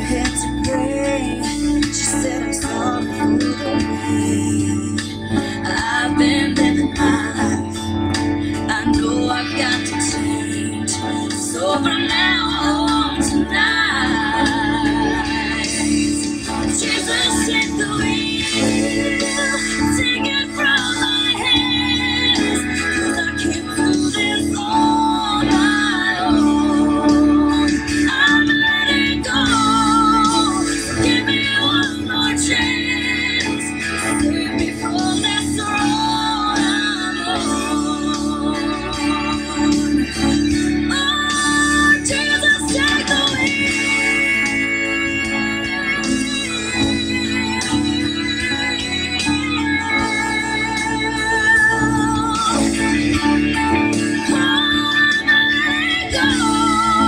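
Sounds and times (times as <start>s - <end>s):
backing track low chord: 0.0s - 57.0s
electric guitar melody: 0.0s - 57.0s.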